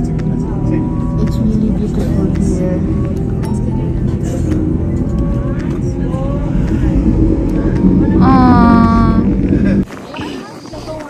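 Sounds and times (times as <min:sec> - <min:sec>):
faint voices: 0:00.0 - 0:11.0
train rumbling inside carriage: 0:00.0 - 0:11.0.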